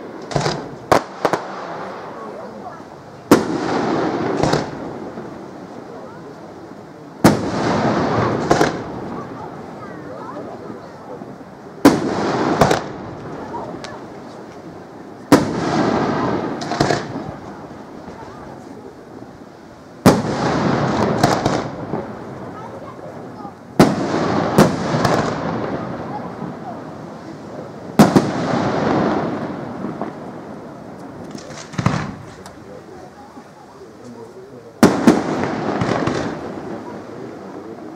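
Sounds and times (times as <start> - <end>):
small firework cracks: 0.0 - 6.4, 7.2 - 19.0, 20.0 - 37.9
rumble after firework bangs: 0.0 - 37.9
firework shells bursting: 0.1 - 2.1, 3.2 - 5.3, 7.2 - 9.8, 11.8 - 18.8, 20.0 - 22.6, 23.7 - 27.2, 27.8 - 32.8, 34.8 - 37.4.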